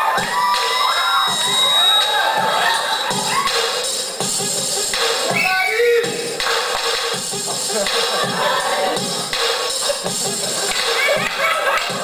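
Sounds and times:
audience cheering and shouting: 0:00.0 - 0:06.4, 0:07.7 - 0:09.4, 0:10.5 - 0:12.0.

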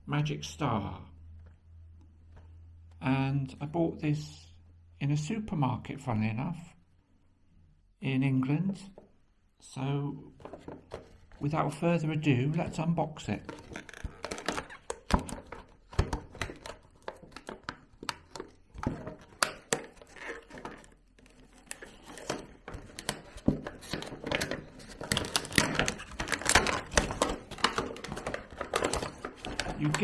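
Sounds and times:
plastic tray handled: 0:10.4 - 0:11.5, 0:12.5 - 0:30.0.

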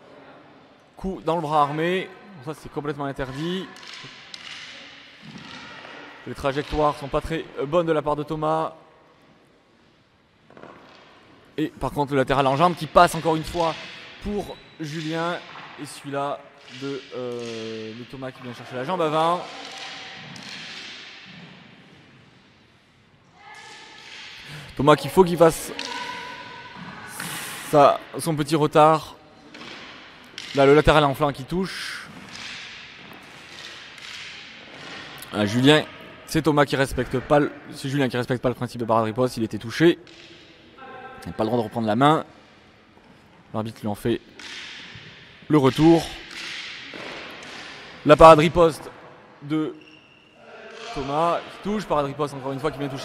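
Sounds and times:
echoing sports hall ambience: 0:00.0 - 0:53.0
taps of fencing canes: 0:03.7 - 0:06.8, 0:16.5 - 0:21.8, 0:29.5 - 0:31.0, 0:31.9 - 0:35.3, 0:44.3 - 0:48.0, 0:50.7 - 0:51.2.

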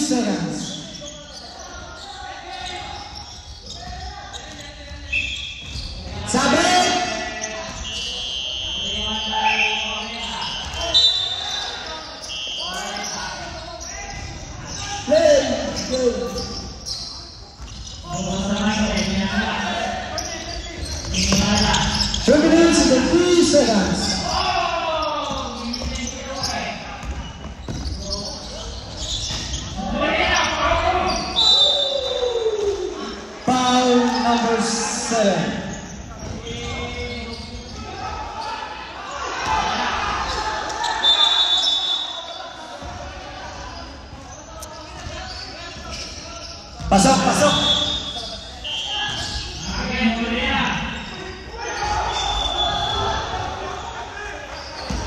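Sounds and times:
players calling out: 0:00.0 - 0:55.0
sneakers squeaking: 0:00.0 - 0:55.0.

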